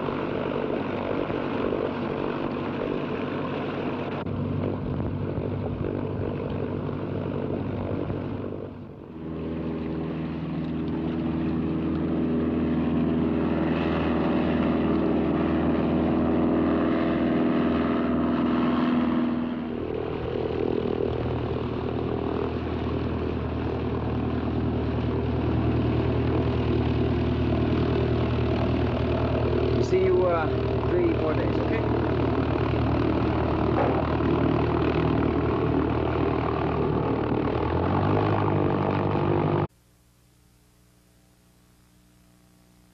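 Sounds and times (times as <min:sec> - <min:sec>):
propeller plane engine humming: 0:00.0 - 0:39.8.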